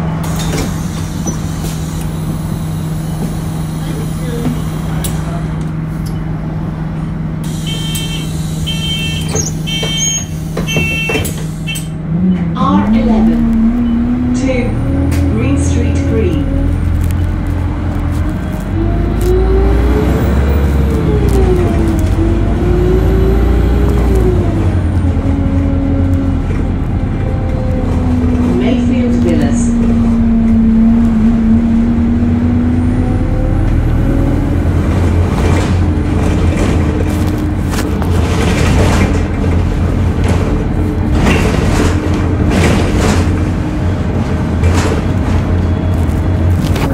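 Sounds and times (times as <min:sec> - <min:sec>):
bus engine idling: 0:00.0 - 0:46.9.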